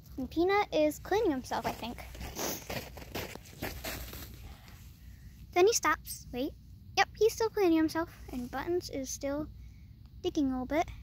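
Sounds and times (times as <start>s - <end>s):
rustling crunching scrapes: 1.1s - 5.0s.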